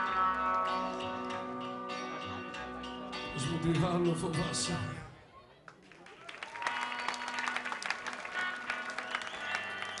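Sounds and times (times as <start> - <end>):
audience applauding and cheering: 5.7 - 10.0.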